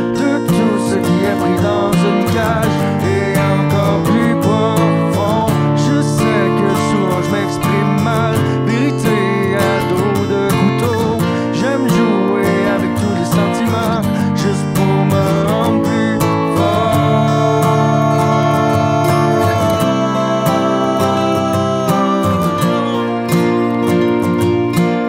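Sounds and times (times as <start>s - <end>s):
acoustic guitar music: 0.0s - 25.0s.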